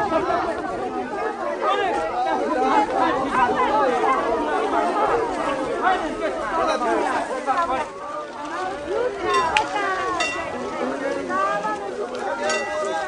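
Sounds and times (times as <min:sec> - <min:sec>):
crowd babble: 0:00.0 - 0:13.0.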